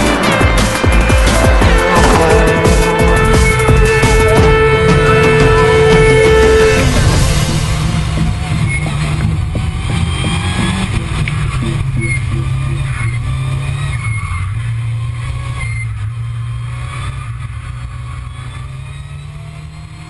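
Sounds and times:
rally car engine revving: 0:00.0 - 0:20.0.

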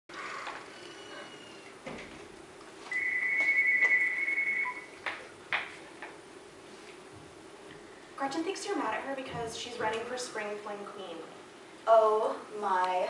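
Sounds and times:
electronic two-tone phone ring: 0:02.9 - 0:05.0.

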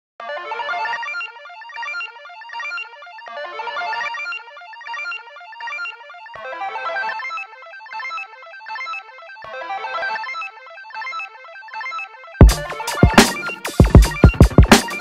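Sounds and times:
hip-hop instrumental beat: 0:00.4 - 0:15.0.

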